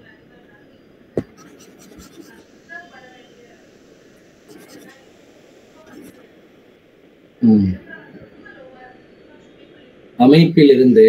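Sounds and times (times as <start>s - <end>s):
faint low voice over video call: 0.0s - 3.7s, 4.5s - 6.3s.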